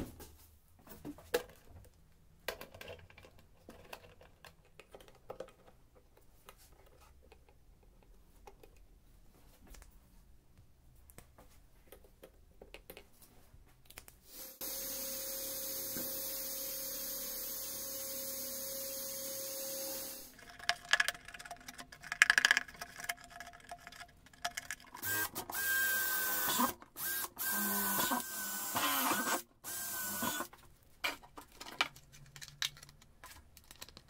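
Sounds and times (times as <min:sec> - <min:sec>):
small electric motor running: 0:14.3 - 0:20.3, 0:25.0 - 0:30.5.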